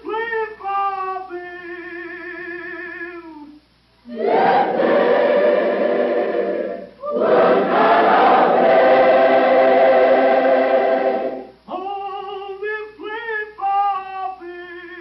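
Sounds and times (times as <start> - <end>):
choir singing held chords: 4.1 - 11.6.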